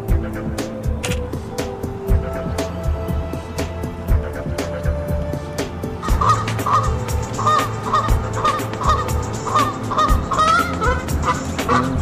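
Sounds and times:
background music with low beat: 0:00.0 - 0:12.0
geese honking: 0:06.0 - 0:12.0.

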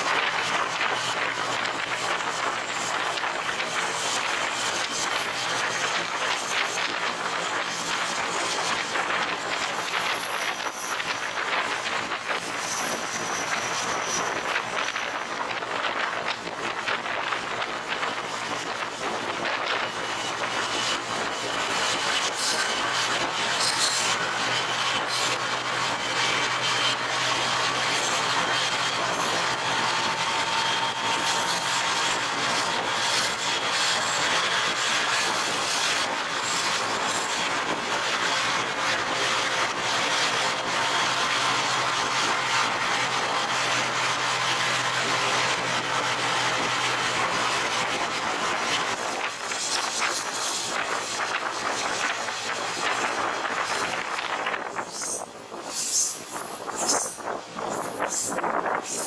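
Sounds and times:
low engine hum: 0:00.0 - 0:59.0
train wheels rushing in tunnel: 0:00.0 - 0:59.0.

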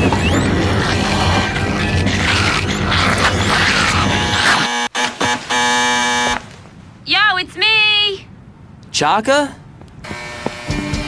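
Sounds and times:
intercom door buzzer: 0:04.1 - 0:06.4, 0:10.0 - 0:11.0.

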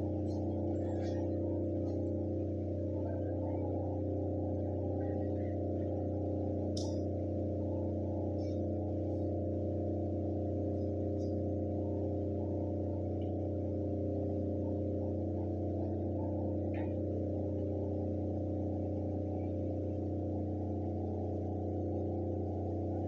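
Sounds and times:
low drone of held tones: 0:00.0 - 0:23.0.

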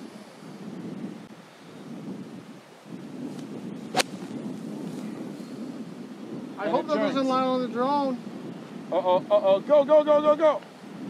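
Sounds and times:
wind buffeting microphone: 0:00.0 - 0:11.0
golf club striking ball: 0:03.4 - 0:04.5.

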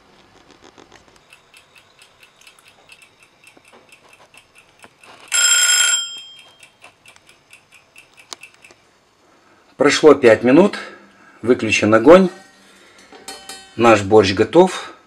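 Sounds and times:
kitchen timer ticking: 0:01.2 - 0:08.8
timer bell ringing: 0:05.3 - 0:06.8.

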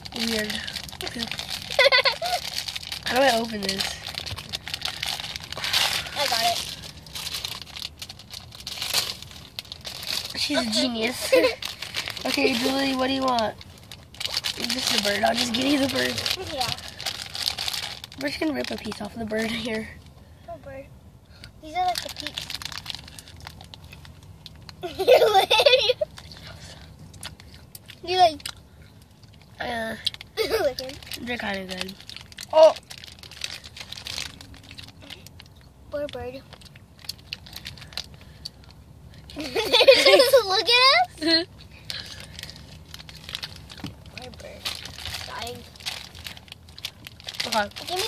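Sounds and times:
foil wrapper crinkling: 0:00.0 - 0:19.9, 0:21.8 - 0:27.5, 0:30.0 - 0:35.7, 0:36.5 - 0:38.8, 0:41.8 - 0:48.0
low steady hum: 0:00.0 - 0:48.0.

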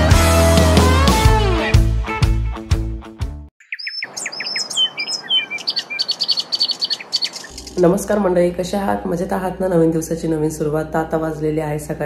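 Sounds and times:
birds chirping and singing: 0:03.6 - 0:08.3.

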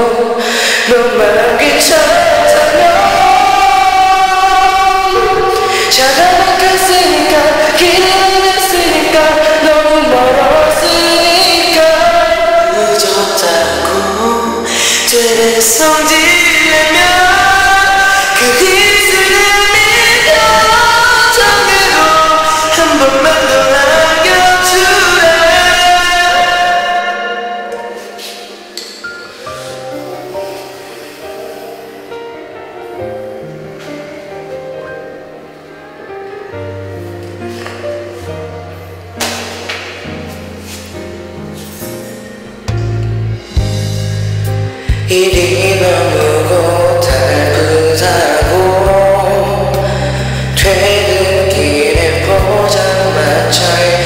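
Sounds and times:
instrumental backing track: 0:00.0 - 0:54.0
man singing pop ballad: 0:44.9 - 0:54.0.

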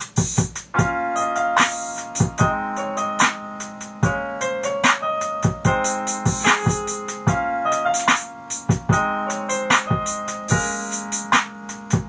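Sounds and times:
drum track: 0:00.0 - 0:12.0
piano chords and melody: 0:00.0 - 0:12.0.

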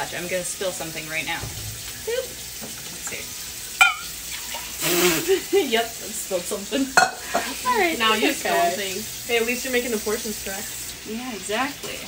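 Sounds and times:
people laughing: 0:04.4 - 0:05.9.

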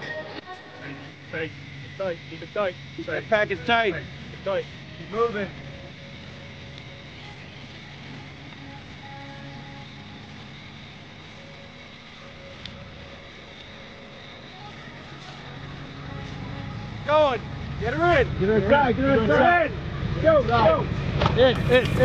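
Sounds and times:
truck engine rumbling: 0:16.0 - 0:22.0.

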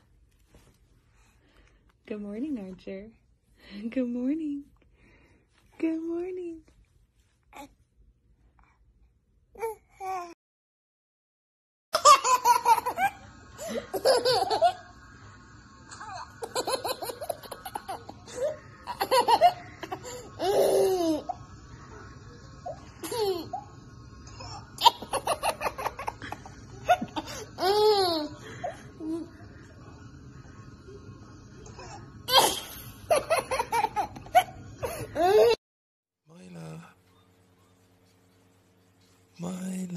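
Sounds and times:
toddler laughing: 0:26.9 - 0:28.4.

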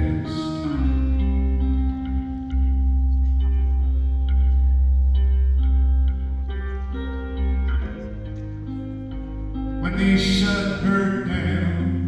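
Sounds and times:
deep held bass line: 0:00.0 - 0:12.0
piano: 0:00.0 - 0:12.0.

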